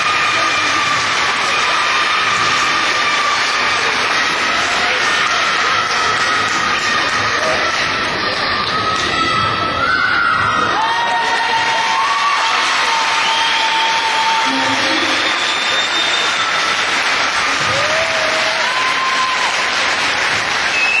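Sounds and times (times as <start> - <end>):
audience applauding: 0.0 - 9.1, 10.7 - 21.0.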